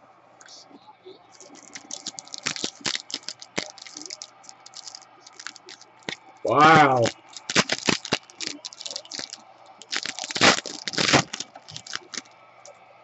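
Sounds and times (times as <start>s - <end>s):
cards and wrapper crinkling: 1.4s - 12.3s.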